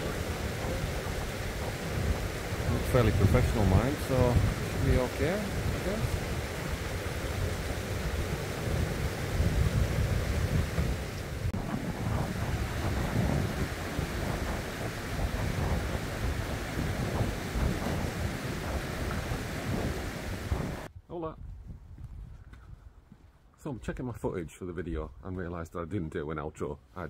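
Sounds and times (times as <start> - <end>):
river rushing over rocks: 0.0 - 20.9
wind buffeting microphone: 0.0 - 24.0.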